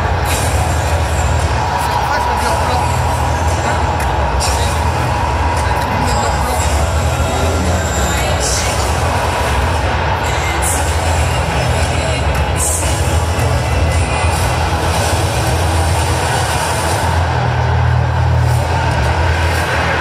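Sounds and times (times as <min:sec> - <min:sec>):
loud music with heavy bass: 0:00.0 - 0:20.0.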